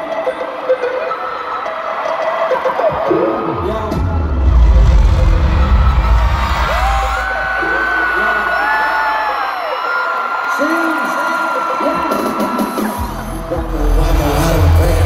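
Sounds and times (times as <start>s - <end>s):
crowd screaming and cheering: 0.0s - 15.0s
deep heavy rumble: 3.9s - 8.0s.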